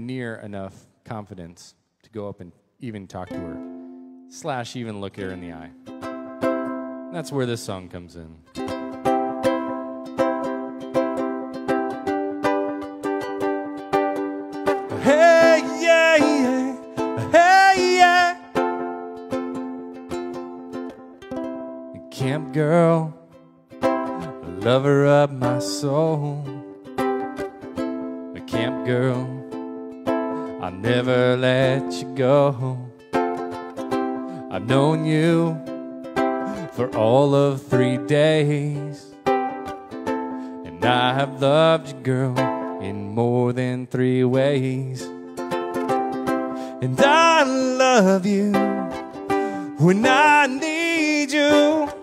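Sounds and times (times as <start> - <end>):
ukulele strumming chords: 3.1 - 52.0
man singing: 14.9 - 18.6, 22.0 - 23.2, 24.2 - 26.6, 28.4 - 29.4, 30.6 - 33.0, 34.5 - 35.7, 36.5 - 39.2, 40.6 - 45.1, 46.7 - 52.0.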